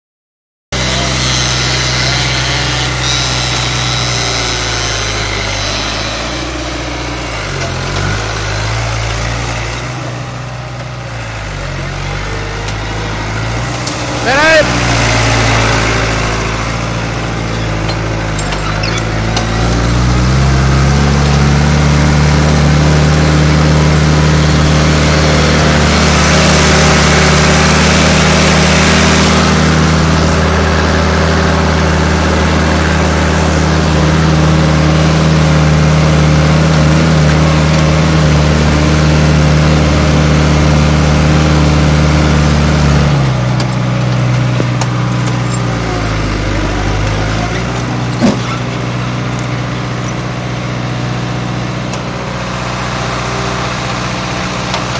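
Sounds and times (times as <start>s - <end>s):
tractor diesel engine under load: 0.7s - 54.9s.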